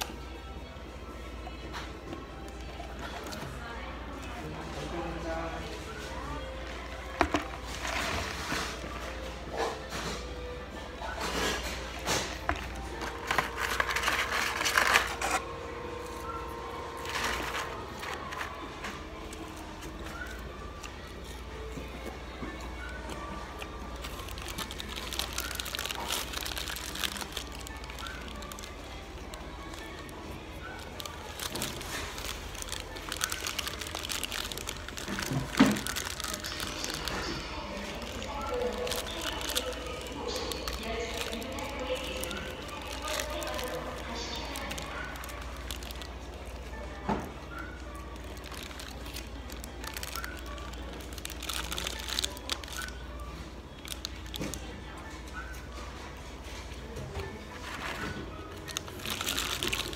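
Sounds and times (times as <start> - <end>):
background music: 0.0 - 59.9
paper wrapper rustling: 5.7 - 9.4, 11.2 - 21.6, 22.9 - 53.1, 53.8 - 54.7, 57.5 - 59.9.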